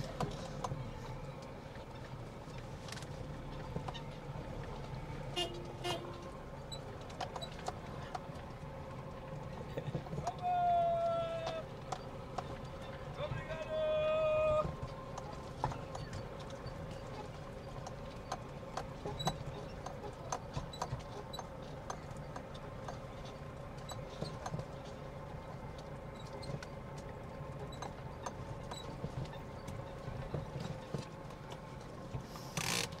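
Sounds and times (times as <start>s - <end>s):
low steady rumble: 0.0s - 33.0s.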